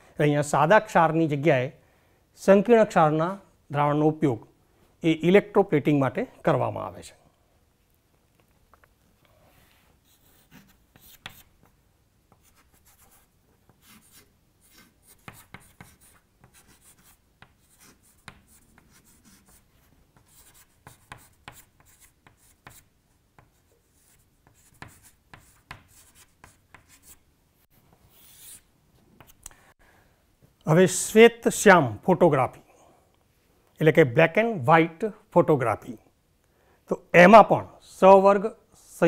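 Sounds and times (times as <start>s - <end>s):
chalk writing on chalkboard: 9.7s - 27.2s, 28.0s - 28.6s.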